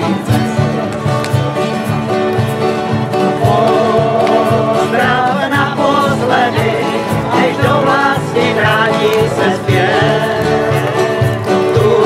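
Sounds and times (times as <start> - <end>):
group singing country song: 0.0 - 12.0
strummed acoustic guitars: 0.0 - 12.0.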